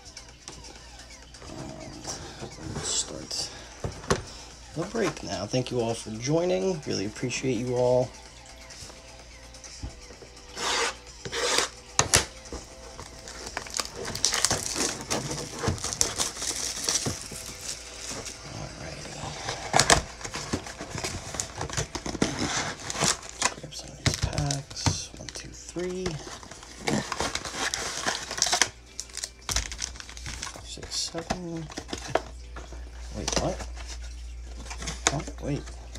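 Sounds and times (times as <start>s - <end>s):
plastic wrap crinkling and tearing: 13.0s - 32.4s.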